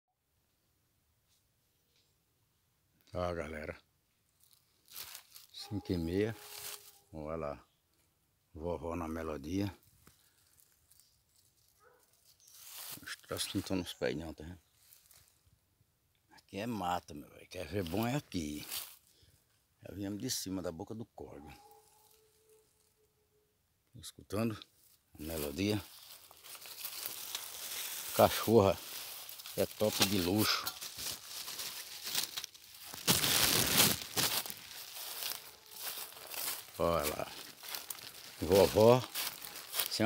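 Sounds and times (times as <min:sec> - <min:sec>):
light rustling underfoot: 0:04.3 - 0:07.1, 0:09.8 - 0:13.8, 0:14.6 - 0:15.4, 0:17.7 - 0:19.5, 0:24.7 - 0:40.0
footsteps on dry leaf litter: 0:04.4 - 0:07.1, 0:10.0 - 0:13.8, 0:14.8 - 0:15.3, 0:17.7 - 0:19.1, 0:25.2 - 0:40.0
distant hunting dog baying: 0:21.3 - 0:23.5.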